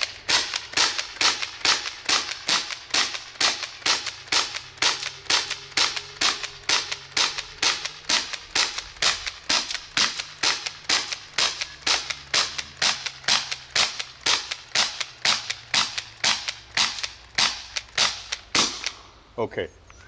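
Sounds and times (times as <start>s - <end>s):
bb gun firing sharp pops: 0.0s - 19.2s.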